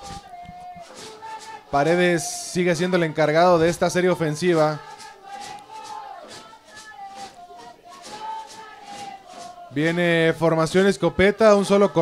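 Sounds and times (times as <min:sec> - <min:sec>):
crowd chanting: 0:00.0 - 0:12.0.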